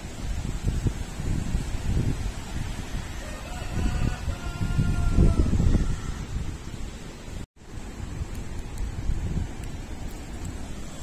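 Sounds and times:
gusty wind through trees: 0.0s - 11.0s.

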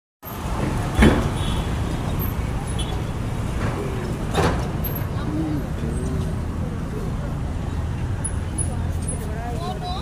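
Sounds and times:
city traffic rumble: 0.2s - 10.0s
faint voices: 3.5s - 10.0s.

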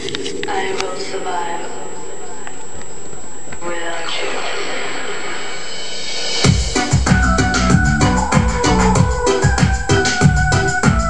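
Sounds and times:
electronic synth music with falling sweep: 4.4s - 11.0s.

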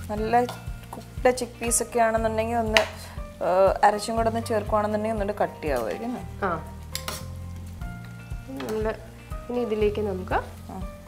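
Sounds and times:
stew sizzling in a frying pan: 0.0s - 11.0s
metal spoon clinking pan: 6.9s - 7.3s.

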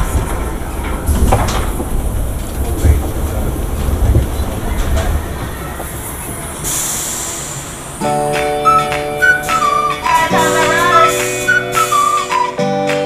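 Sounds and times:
roller coaster clunks: 0.0s - 12.6s
roller coaster wheels rumbling on track: 0.0s - 12.6s
air hiss: 5.2s - 12.4s.

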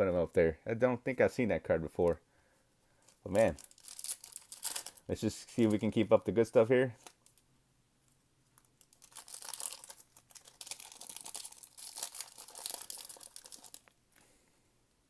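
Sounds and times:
foil wrapper crinkling and tearing: 3.1s - 5.9s, 8.6s - 14.0s.

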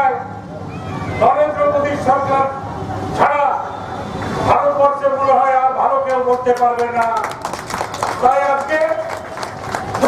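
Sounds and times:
man shouting over public address: 0.0s - 0.4s, 1.1s - 2.6s, 3.2s - 3.7s, 4.5s - 7.3s, 8.2s - 9.3s
man speaking over public address: 0.0s - 0.4s, 1.2s - 3.8s, 4.4s - 10.0s.

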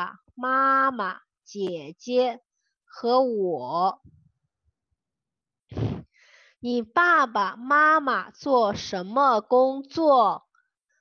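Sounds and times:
woman speaking: 0.0s - 4.2s, 6.6s - 10.6s.

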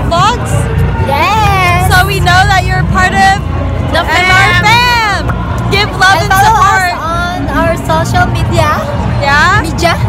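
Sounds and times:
crowd babble: 0.0s - 10.0s
street noise: 0.0s - 10.0s
woman talking: 4.0s - 10.0s.

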